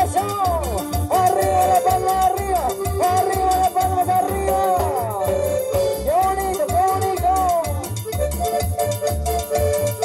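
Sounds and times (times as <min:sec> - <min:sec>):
live band dance music: 0:00.0 - 0:10.0
pulsing bass beat: 0:00.0 - 0:10.0
sliding lead melody: 0:00.0 - 0:10.0
timbales and congas: 0:00.0 - 0:10.0.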